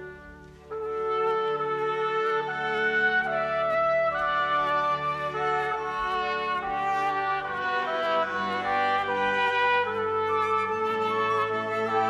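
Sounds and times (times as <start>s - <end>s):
flutes: 0.0s - 12.0s
trumpet playing held notes: 0.0s - 12.0s.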